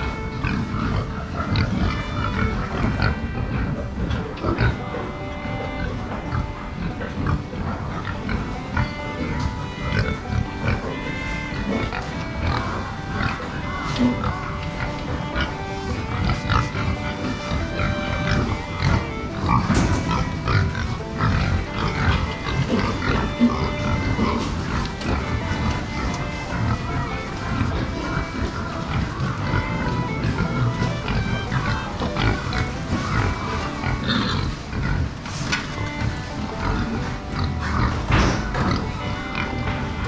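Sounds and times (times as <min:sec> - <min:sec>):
background music: 0:00.0 - 0:40.0
pigs grunting: 0:00.0 - 0:40.0.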